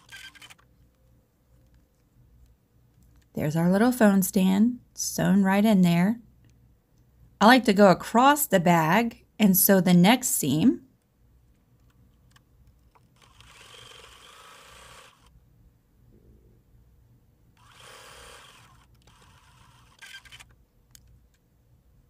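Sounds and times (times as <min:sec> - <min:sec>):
sewing machine stitching: 0:00.0 - 0:00.6, 0:12.9 - 0:15.3, 0:17.6 - 0:20.5.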